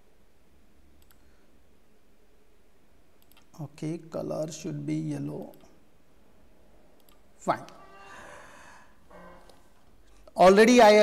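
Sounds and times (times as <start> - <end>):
low room hum: 0.0 - 11.0
faint mouse click: 1.0 - 1.2.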